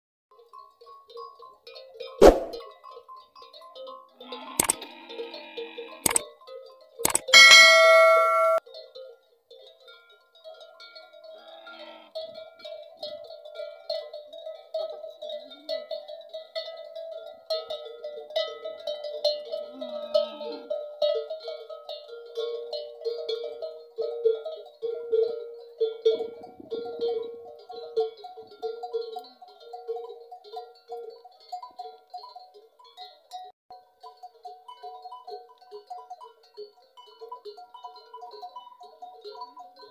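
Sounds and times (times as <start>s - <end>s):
bells clanking and jingling: 6.5s - 39.9s
bright loud chime: 7.4s - 8.6s.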